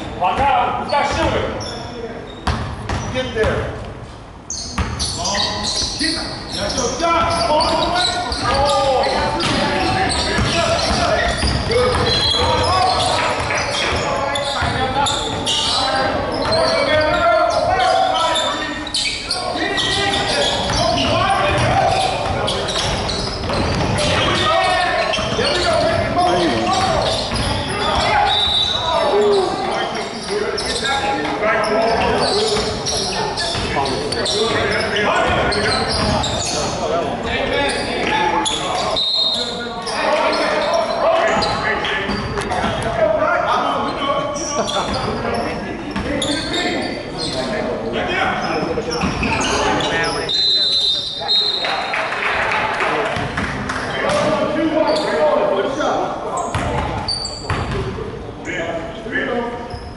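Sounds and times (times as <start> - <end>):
players calling out: 4.5 - 57.8.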